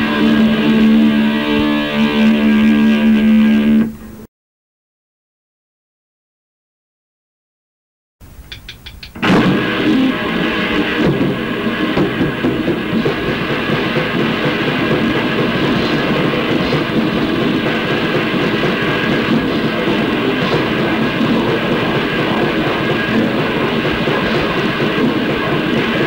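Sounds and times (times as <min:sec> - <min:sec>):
punk band playing: 0:00.0 - 0:04.1, 0:08.3 - 0:26.0.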